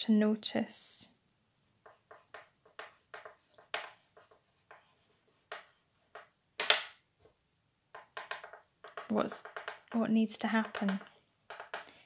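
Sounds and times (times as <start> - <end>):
oil pastel rubbing on paper: 1.8 - 6.4.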